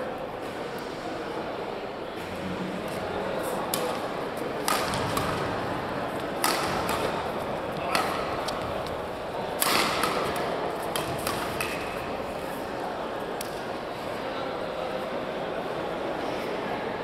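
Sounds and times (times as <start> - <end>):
hum of voices in a hall: 0.0 - 17.0
rackets hitting shuttlecock: 3.7 - 12.2.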